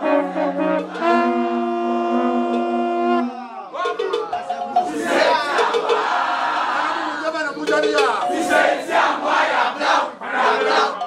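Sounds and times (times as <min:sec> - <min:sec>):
crowd of men shouting: 0:04.7 - 0:07.5, 0:08.2 - 0:11.0.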